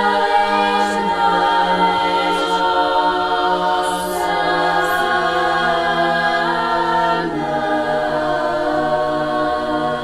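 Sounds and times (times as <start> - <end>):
women's choir singing a cappella: 0.0 - 10.0.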